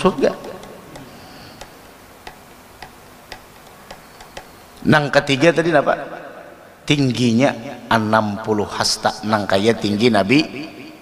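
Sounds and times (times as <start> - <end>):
light ticking: 0.2 - 4.8.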